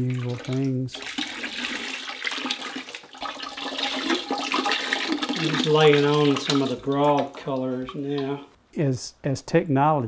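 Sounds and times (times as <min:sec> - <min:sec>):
liquid glaze pouring and splashing: 0:00.0 - 0:08.5.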